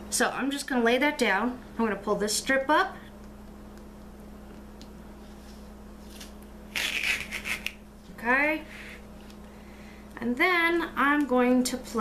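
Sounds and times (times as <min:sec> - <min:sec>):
duct tape ripping off surface: 0:06.1 - 0:07.8.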